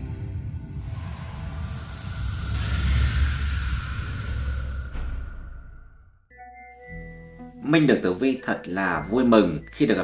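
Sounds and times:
deep rumble: 0:00.0 - 0:06.3
rising whooshing hiss: 0:00.3 - 0:06.1.

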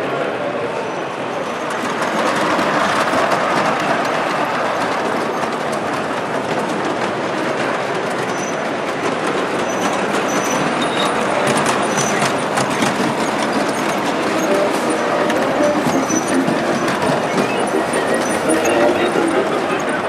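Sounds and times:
model trains rumbling on track: 0:00.0 - 0:20.0
wheels clicking over rails: 0:01.5 - 0:20.0
high wheel squeals: 0:09.6 - 0:20.0.

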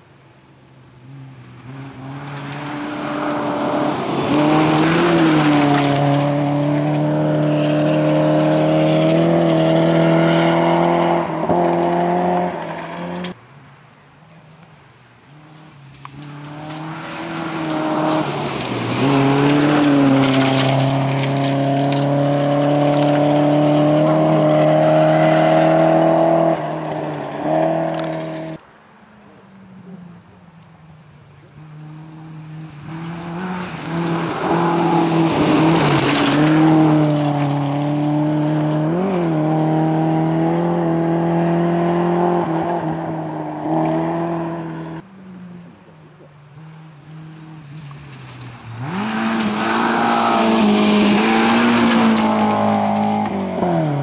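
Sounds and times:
rally car engines at high revs: 0:01.0 - 0:13.4, 0:15.2 - 0:28.6, 0:31.1 - 0:54.0.

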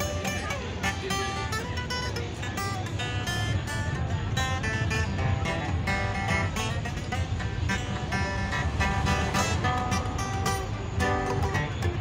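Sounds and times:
acoustic guitar strumming chords: 0:00.0 - 0:12.0
low steady rumble: 0:03.0 - 0:12.0.

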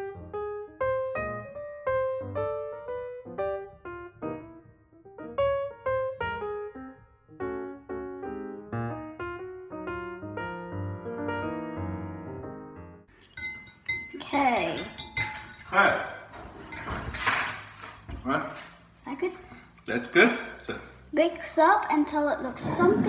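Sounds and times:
piano melody: 0:00.0 - 0:17.1.

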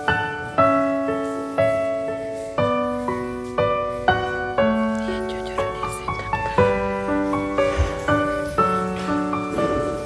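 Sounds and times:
slow gentle piano melody: 0:00.0 - 0:10.0.

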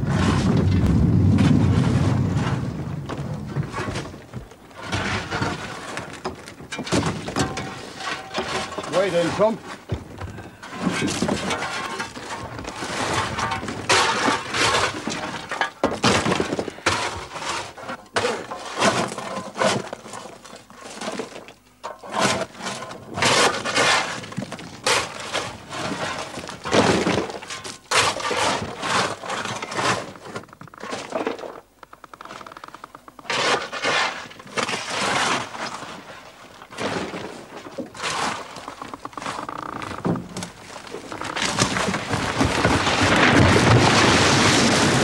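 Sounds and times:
rock cracking and crashing down: 0:00.0 - 0:21.5, 0:22.4 - 0:31.7, 0:33.2 - 0:45.0.

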